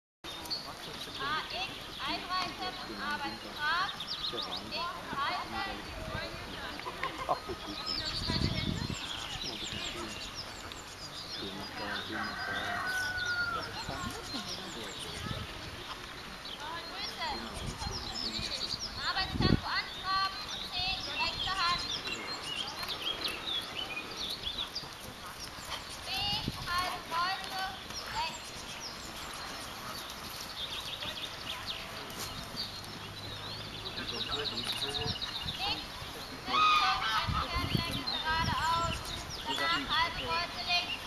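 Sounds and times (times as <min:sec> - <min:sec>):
small birds chirping: 0:00.2 - 0:41.0.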